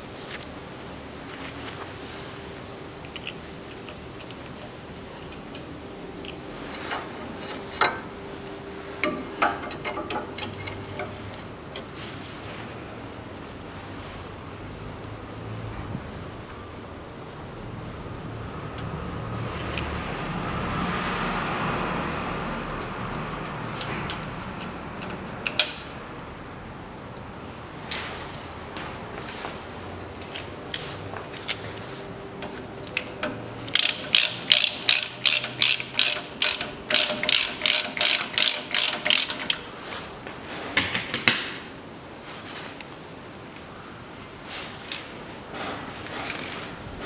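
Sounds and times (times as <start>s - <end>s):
soft hiss-like rustle: 0.0s - 9.4s, 11.0s - 19.0s, 26.2s - 33.0s, 39.7s - 40.8s, 41.9s - 46.8s
ratchet wrench clicking: 33.7s - 39.6s.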